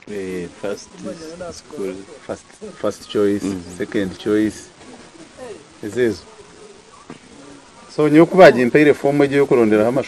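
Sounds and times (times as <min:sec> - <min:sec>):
man speaking: 0:00.0 - 0:04.8, 0:05.4 - 0:06.4, 0:07.9 - 0:10.0.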